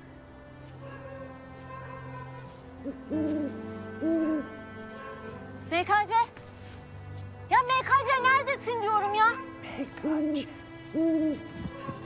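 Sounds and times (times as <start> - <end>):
faint background drone: 0.0 - 12.0
owl hooting: 0.8 - 5.3, 9.1 - 12.0.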